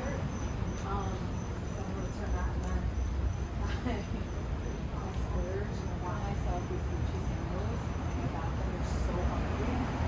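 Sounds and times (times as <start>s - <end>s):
crickets trilling: 0.0s - 10.0s
people talking: 0.0s - 10.0s
traffic rumble: 0.0s - 10.0s.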